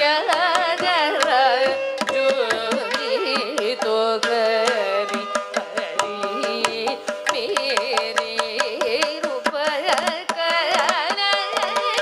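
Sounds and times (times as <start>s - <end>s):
ghatam strokes: 0.0s - 12.0s
mridangam strokes: 0.0s - 12.0s
violin: 0.0s - 12.0s
woman singing: 0.0s - 12.0s.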